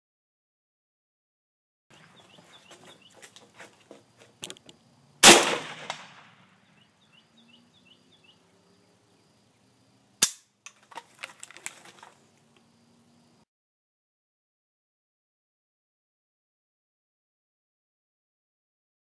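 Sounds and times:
gun handling clicks and knocks: 0:02.4 - 0:04.8, 0:10.2 - 0:12.6
rifle shots: 0:05.2 - 0:06.6.

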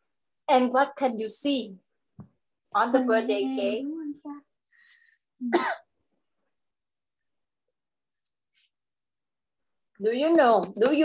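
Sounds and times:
person coughing: 0:05.4 - 0:05.9.

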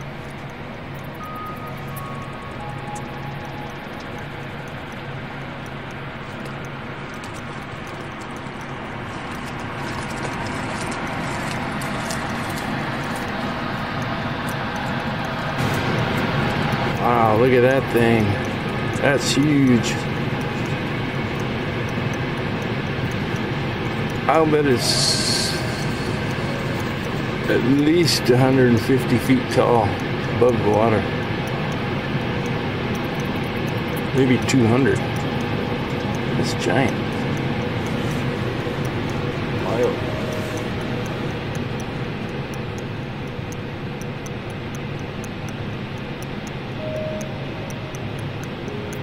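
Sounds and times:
low rumbling noise: 0:00.0 - 0:34.2
engine drone with low hum: 0:00.0 - 0:49.0.

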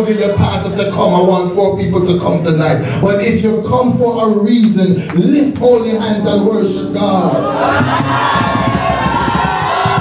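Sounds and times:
church music: 0:00.0 - 0:10.0
congregation calling out and singing: 0:06.2 - 0:10.0.

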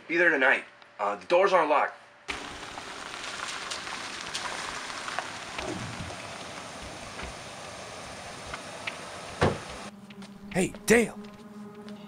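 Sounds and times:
rain drops ticking: 0:02.3 - 0:09.1
steady rain falling: 0:02.3 - 0:09.9.

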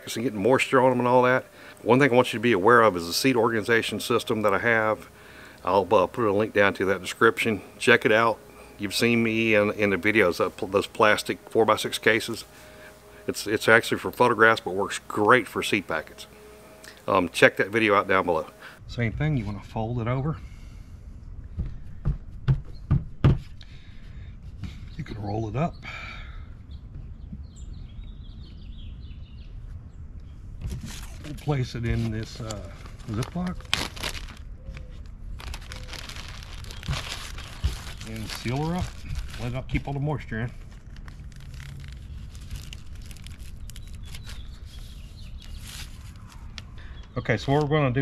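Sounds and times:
low background rumble: 0:18.6 - 0:48.0
plastic bag crinkling: 0:32.1 - 0:46.6.

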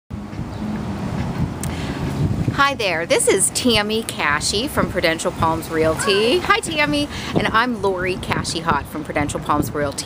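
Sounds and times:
traffic rumble: 0:00.1 - 0:10.0
wind buffeting microphone: 0:00.1 - 0:10.0.

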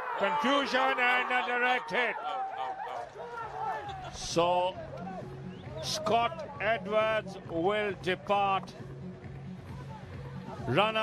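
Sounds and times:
players shouting and whooping: 0:00.0 - 0:06.6.

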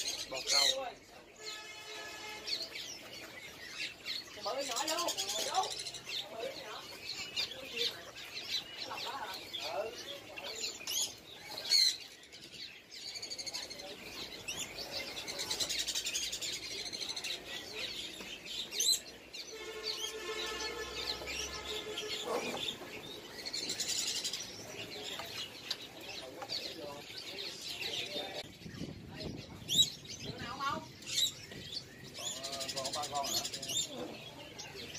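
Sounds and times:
songbirds chirping: 0:00.0 - 0:34.9
buzzy bird call: 0:18.8 - 0:24.5.

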